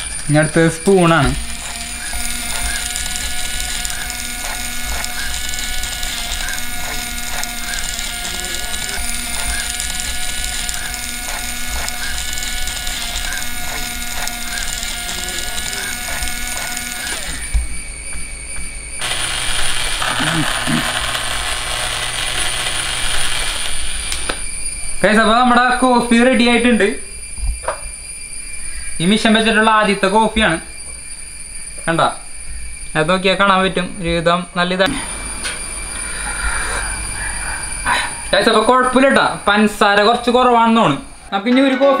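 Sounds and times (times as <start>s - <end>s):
small gear motor running: 0.0s - 24.7s.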